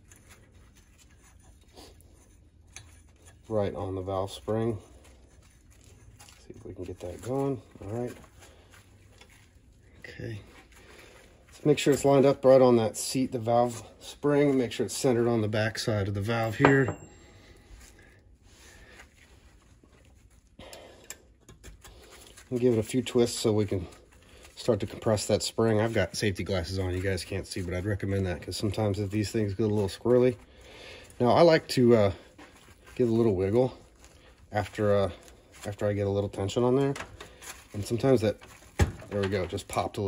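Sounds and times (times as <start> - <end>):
gloved hands rustling and tapping: 0.0 - 15.5, 21.2 - 40.0.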